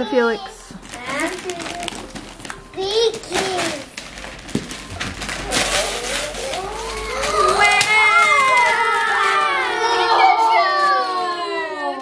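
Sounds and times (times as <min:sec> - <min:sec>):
wrapping paper tearing: 0:00.8 - 0:10.0
children exclaiming: 0:05.8 - 0:12.0.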